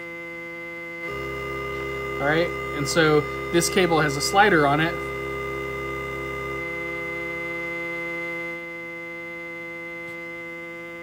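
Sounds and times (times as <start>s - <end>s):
synthesizer drone chord: 1.0s - 9.7s.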